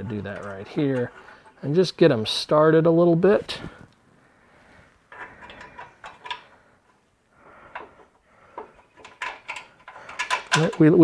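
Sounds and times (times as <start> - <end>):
metal bracket scraping and clicking: 0.0 - 2.3, 5.1 - 7.0, 7.7 - 11.0.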